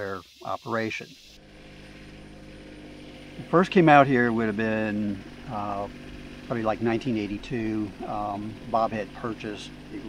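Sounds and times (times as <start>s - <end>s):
vehicle engine running: 1.2s - 10.0s.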